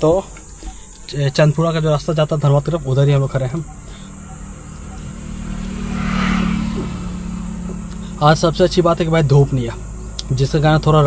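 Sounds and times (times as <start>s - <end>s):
steady low hum: 0.0s - 11.0s
vehicle passing close by: 2.8s - 11.0s.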